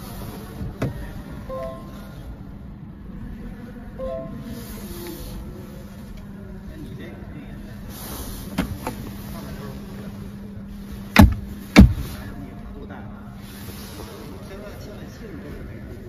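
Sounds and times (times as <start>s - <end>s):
steady low hum: 8.4s - 13.8s.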